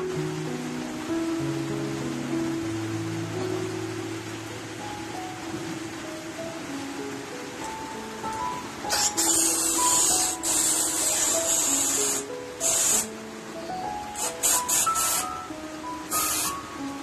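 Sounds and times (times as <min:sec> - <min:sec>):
background music: 0:00.0 - 0:17.0
gas hissing into a balloon: 0:08.8 - 0:13.2, 0:14.0 - 0:15.5, 0:16.1 - 0:16.7.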